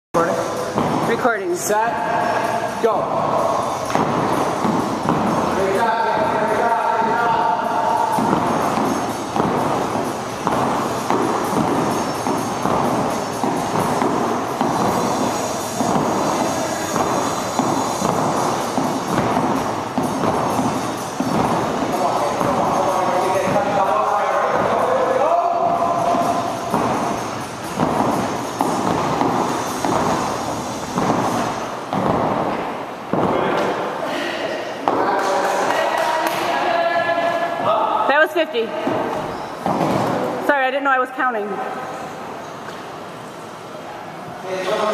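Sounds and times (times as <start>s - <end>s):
voices: 0.2s - 31.7s
feet thudding: 0.4s - 34.0s, 38.7s - 40.4s
jump rope slapping wooden floor: 3.3s - 33.8s, 38.8s - 40.4s.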